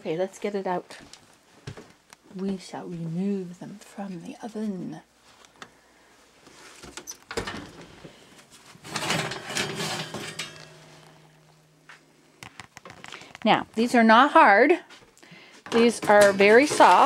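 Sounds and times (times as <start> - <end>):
low steady hum: 7.4 - 12.4
metal baking sheet clattering: 8.8 - 11.7, 15.7 - 17.0.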